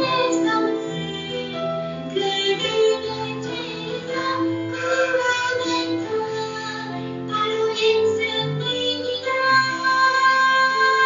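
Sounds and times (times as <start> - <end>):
song with instrumental accompaniment: 0.0 - 11.0.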